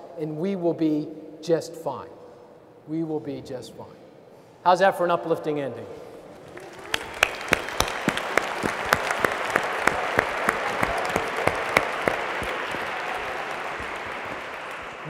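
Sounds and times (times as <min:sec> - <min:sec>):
audience applauding: 0:06.4 - 0:15.0
sharp close claps: 0:06.4 - 0:15.0.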